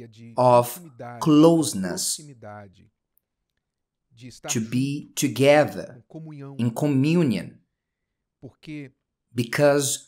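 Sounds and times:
man speaking: 0:00.0 - 0:02.9, 0:04.1 - 0:07.6, 0:08.4 - 0:10.0.

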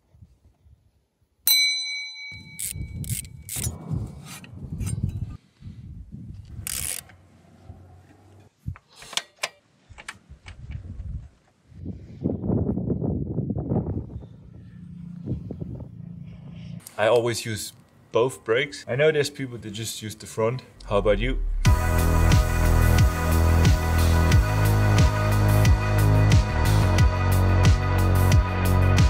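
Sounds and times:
ringing metallic clang: 0:01.5 - 0:03.0
metal parts clicking and clinking: 0:02.5 - 0:03.8.

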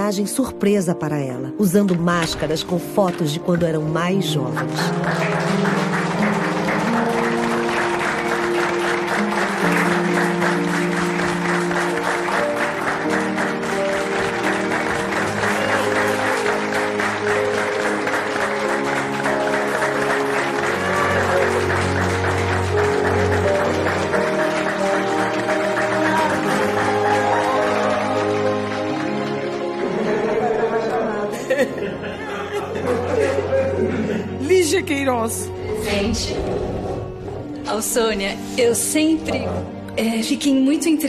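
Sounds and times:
music of sustained held notes: 0:00.0 - 0:41.0
people applauding: 0:03.1 - 0:34.4.

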